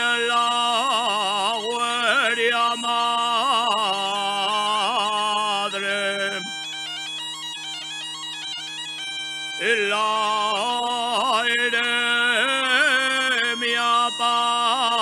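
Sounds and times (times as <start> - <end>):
man singing ornamented notes: 0.0 - 7.1, 9.5 - 15.0
bagpipe: 0.0 - 15.0.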